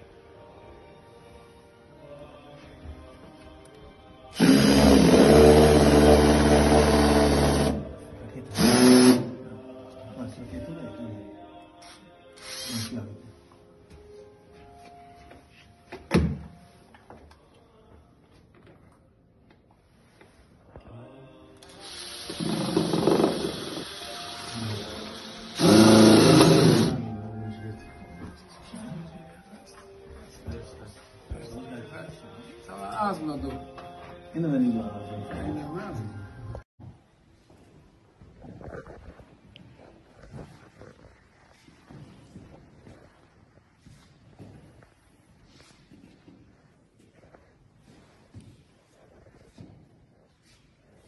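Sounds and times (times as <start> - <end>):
cordless drill running into wood: 21.6 - 27.0.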